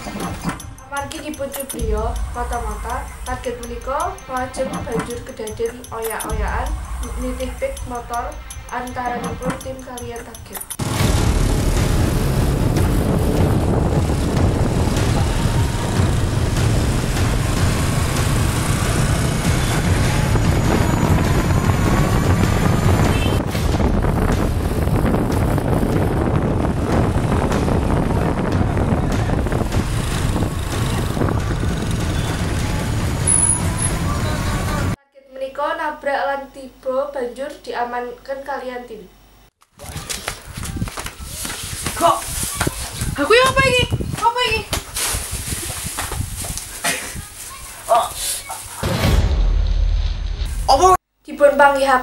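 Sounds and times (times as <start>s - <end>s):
motorbike engines running: 0.0s - 35.0s
wind rumble on microphone: 11.2s - 35.0s, 39.8s - 47.5s.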